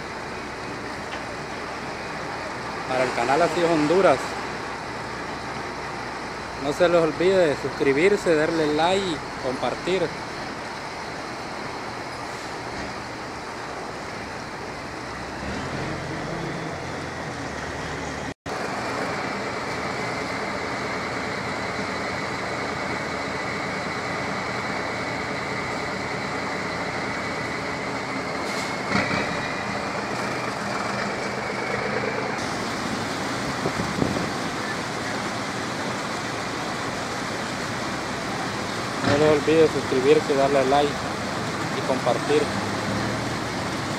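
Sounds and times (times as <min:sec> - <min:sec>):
creek water rushing over weir: 0:00.0 - 0:43.9.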